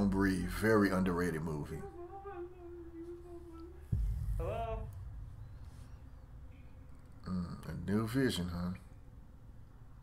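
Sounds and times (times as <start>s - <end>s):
sudden low thump: 3.9s - 6.5s.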